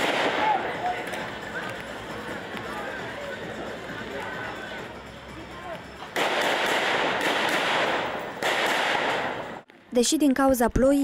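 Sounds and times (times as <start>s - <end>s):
faint voices: 0.2s - 6.2s
rapid gunshots: 6.2s - 9.6s.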